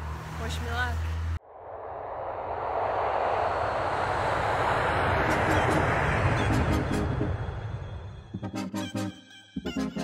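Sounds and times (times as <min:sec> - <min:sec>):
low street traffic hum: 0:00.0 - 0:08.3
road and wind noise: 0:00.0 - 0:08.5.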